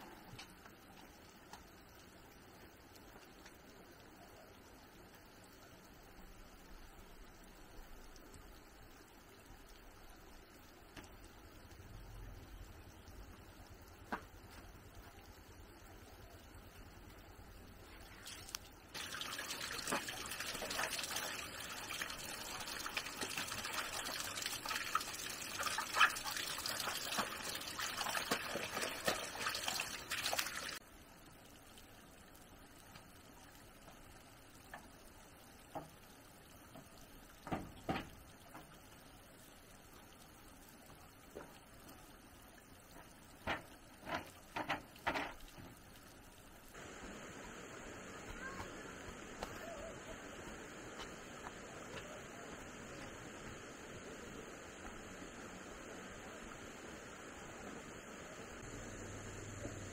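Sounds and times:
water running and splashing: 5.9 - 58.4.

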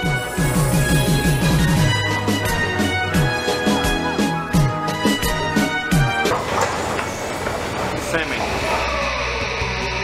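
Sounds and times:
music: 0.0 - 10.0
train rumbling clatter: 6.1 - 8.6.

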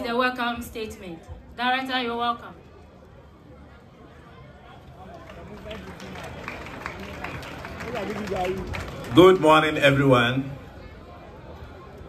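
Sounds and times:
faint audience talk: 0.0 - 12.0.

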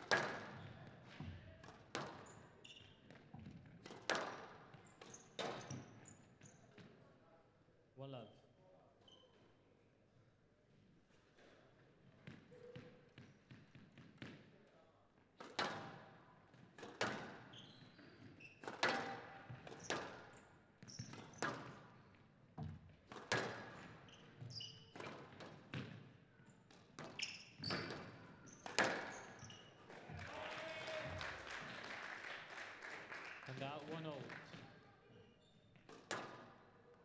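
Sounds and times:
squash ball hitting rackets and walls: 0.0 - 6.0, 15.4 - 29.7, 35.8 - 36.8.

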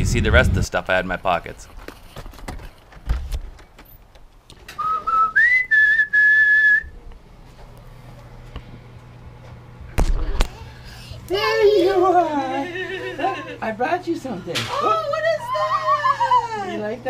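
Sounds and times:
person whistling a call: 4.8 - 6.9.

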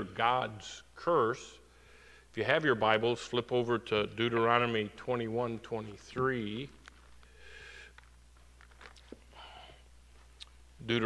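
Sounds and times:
pages turning: 6.8 - 7.4, 8.0 - 9.3.

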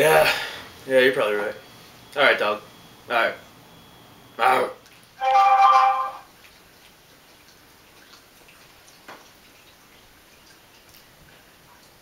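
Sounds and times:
steady electronic tone: 5.2 - 6.3.

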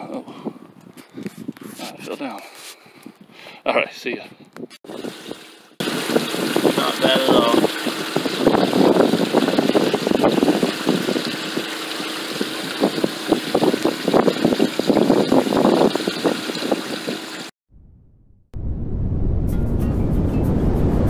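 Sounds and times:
water splashing on metal grate: 4.9 - 17.5.

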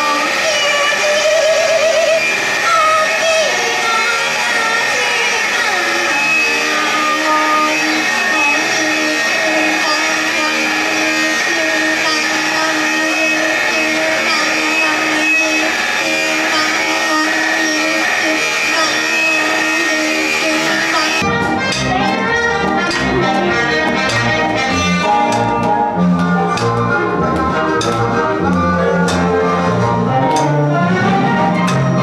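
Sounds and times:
distorted noise music drone: 0.0 - 32.0.

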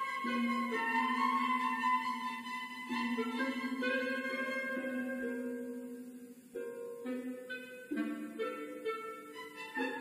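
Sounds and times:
symphony orchestra playing slowly: 0.0 - 10.0.

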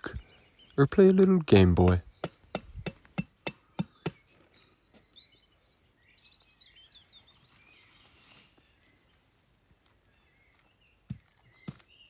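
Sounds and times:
hatchet striking a stake: 1.8 - 4.3, 11.1 - 11.9
faint bird chirps: 3.2 - 12.0.

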